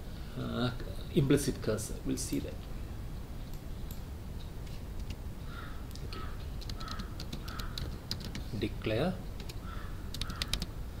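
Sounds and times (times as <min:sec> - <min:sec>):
computer keyboard keys clicking: 0:06.6 - 0:08.5, 0:09.4 - 0:10.7.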